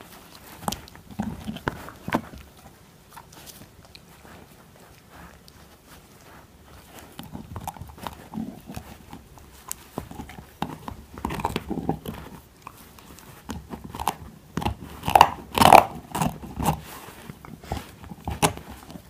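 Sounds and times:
puppy gnawing on bone: 0:00.0 - 0:19.0.

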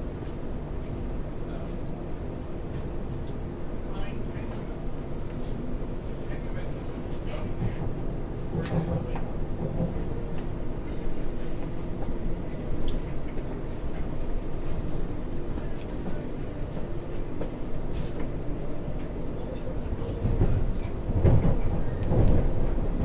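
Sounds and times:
train rumbling inside carriage: 0:00.0 - 0:23.0.

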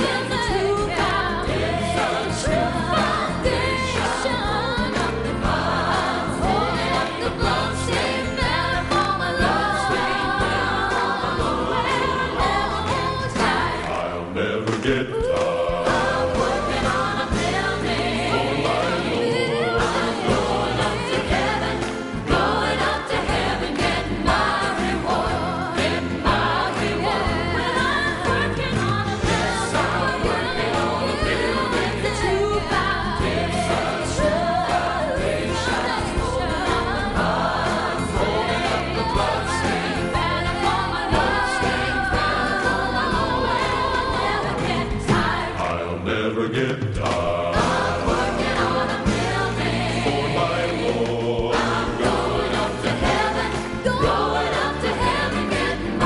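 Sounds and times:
gospel choir singing with band: 0:00.0 - 0:56.0.

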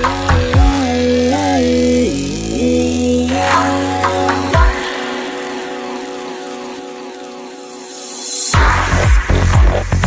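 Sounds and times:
sustained synth drone: 0:00.0 - 0:09.3.

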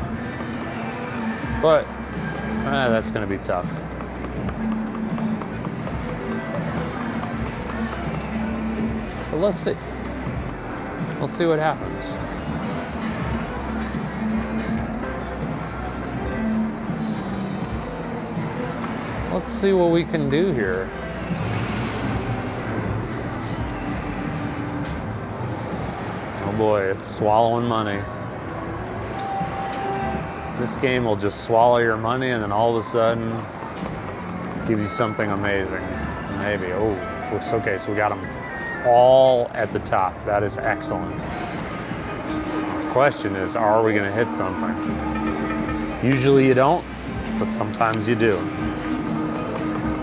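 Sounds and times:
casino background noise: 0:00.0 - 0:50.0
slot machine game music: 0:00.0 - 0:50.0
slot machine electronic spin tones: 0:42.1 - 0:46.7.

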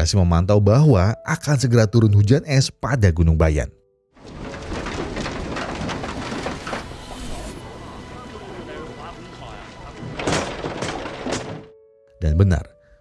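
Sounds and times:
voices talking: 0:07.1 - 0:10.4.

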